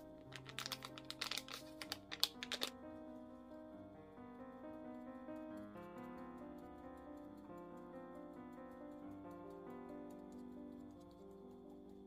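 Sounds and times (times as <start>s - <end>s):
background music: 0.0s - 6.2s
flour sieve clicking on glass bowl: 0.3s - 2.7s.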